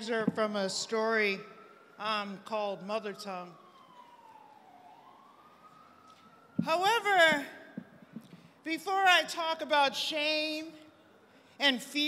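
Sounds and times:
emergency vehicle siren wailing: 0.0 - 8.6.

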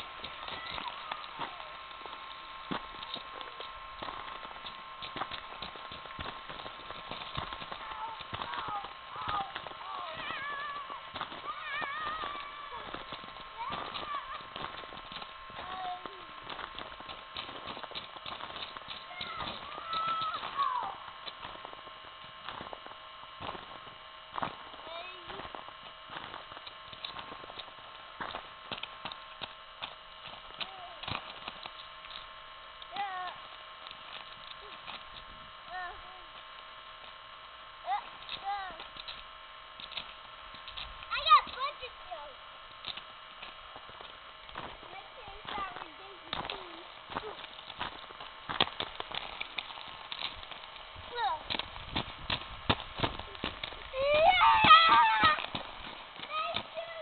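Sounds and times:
children shouting and squealing: 0.0 - 1.8, 7.8 - 14.7, 19.0 - 21.1, 53.3 - 55.6
faint steady whine: 0.0 - 57.0.

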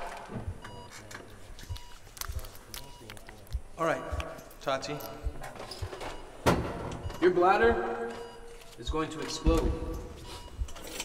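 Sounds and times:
soft low thumps: 0.3 - 0.9, 5.2 - 7.2.

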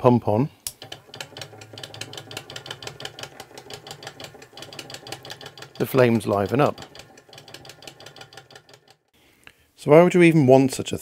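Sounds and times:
electric pump ticking and humming: 0.7 - 9.1.

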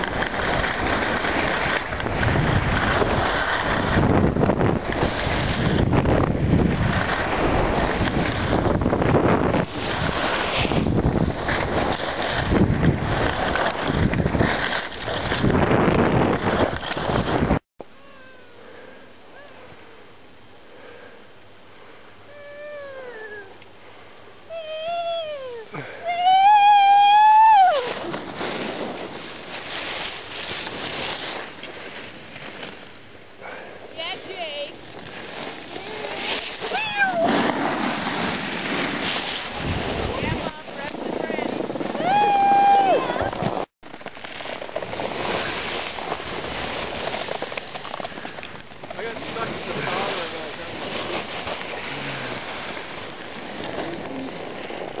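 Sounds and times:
skis scraping over snow: 0.0 - 17.6, 25.2 - 55.0
wind on microphone: 0.0 - 17.6, 35.6 - 43.7
skiers yelling: 24.5 - 28.1, 35.7 - 38.0, 40.0 - 43.5.

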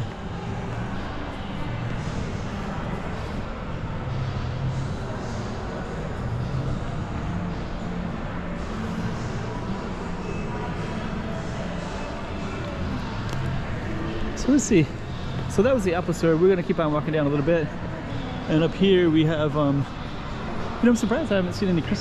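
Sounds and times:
reverberant indoor crowd hubbub: 0.0 - 22.0.

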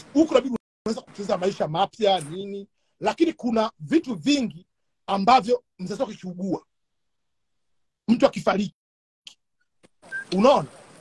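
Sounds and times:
person speaking: 0.0 - 6.7, 10.2 - 10.8.

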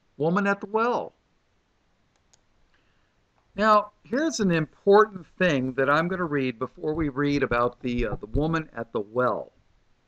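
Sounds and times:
man speaking: 0.2 - 1.1, 3.6 - 9.5
faint click: 2.1 - 3.5
faint ticks: 2.1 - 3.5.

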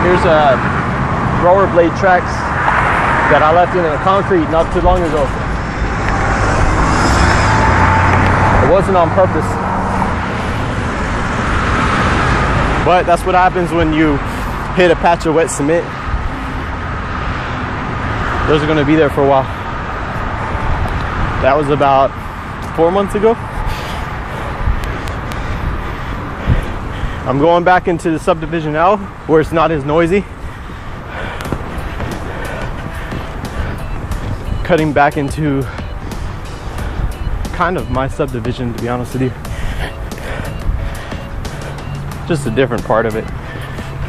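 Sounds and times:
freeway traffic noise: 0.0 - 44.0
vehicle passing by: 0.0 - 44.0.

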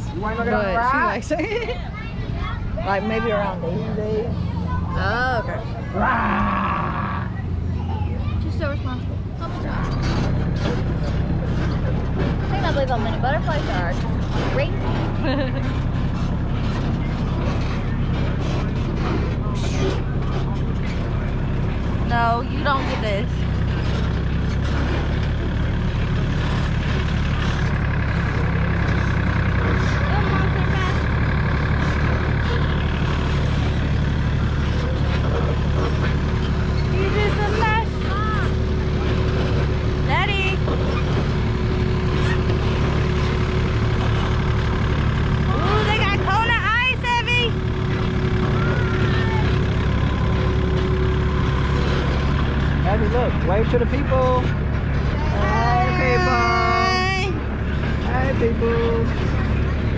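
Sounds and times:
tractor engine running: 0.0 - 59.9
voices in background: 0.0 - 59.9
wagon rolling: 9.4 - 59.9.

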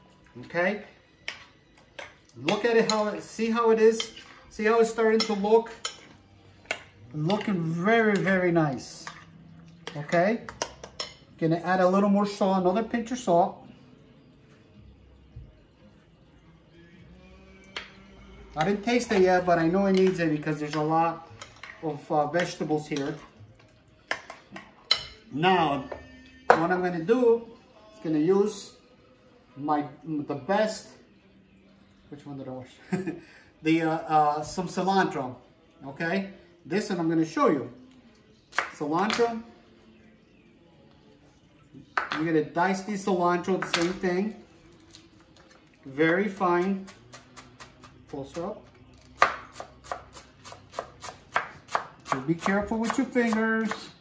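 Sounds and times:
metal spoon clinking glass bowl: 3.9 - 11.4, 19.9 - 26.8
knife chopping on wooden board: 49.2 - 53.8.

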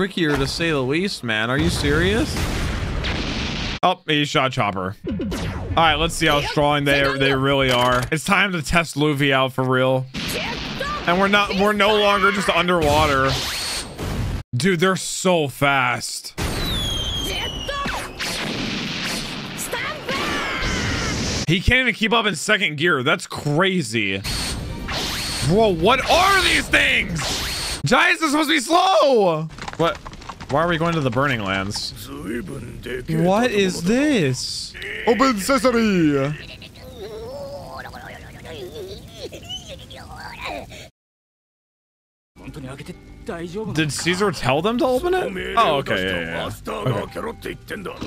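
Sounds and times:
speech: 0.0 - 2.4, 3.8 - 5.0, 5.8 - 13.4, 14.6 - 16.4, 21.5 - 24.2, 25.5 - 27.2, 27.8 - 40.8, 42.4 - 48.0
shouted character voices: 6.2 - 7.6, 10.3 - 12.8, 19.8 - 21.2, 33.0 - 38.6.

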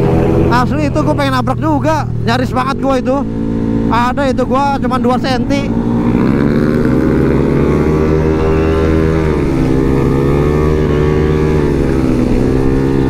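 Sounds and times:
scooter engine running hard: 0.0 - 13.0.

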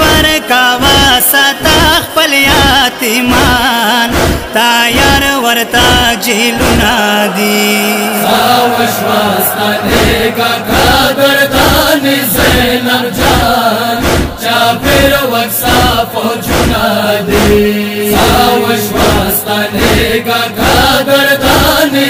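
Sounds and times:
lament chanted: 0.0 - 22.0
rhythmic chest-beating: 0.0 - 22.0.

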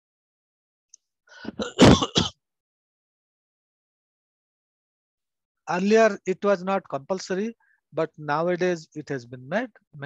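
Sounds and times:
man clearing throat and coughing: 1.5 - 2.4.

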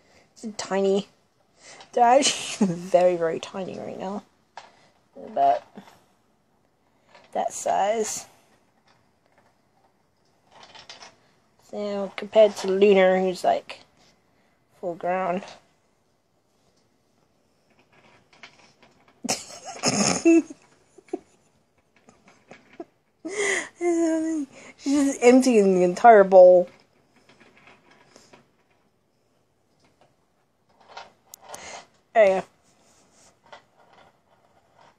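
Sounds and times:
hamster picking through dry food: 33.4 - 34.9.

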